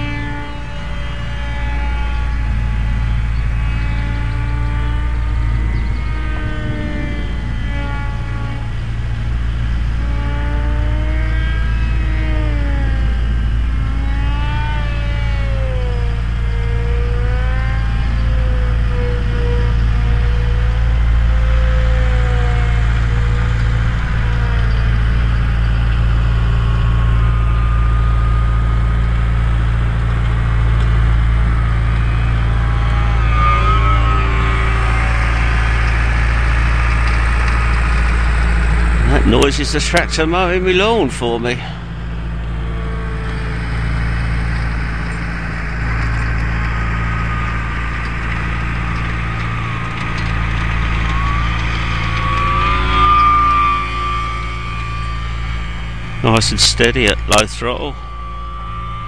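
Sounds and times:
lawn tractor engine mowing: 0:00.0 - 0:59.0
rc plane motor whine: 0:00.0 - 0:59.0.

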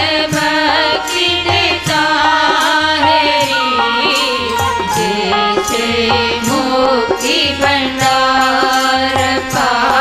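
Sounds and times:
person singing hymn melody: 0:00.9 - 0:08.8
held drone note: 0:02.4 - 0:08.8.

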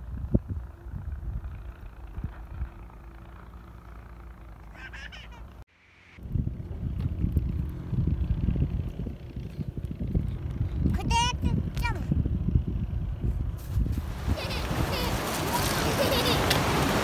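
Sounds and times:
wind buffeting microphone: 0:00.0 - 0:03.2, 0:06.2 - 0:17.0
child calling: 0:14.4 - 0:16.0.

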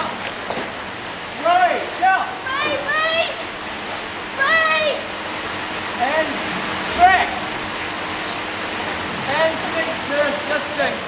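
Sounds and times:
water rushing in a tank: 0:00.0 - 0:11.0
voices calling out: 0:00.8 - 0:11.0.

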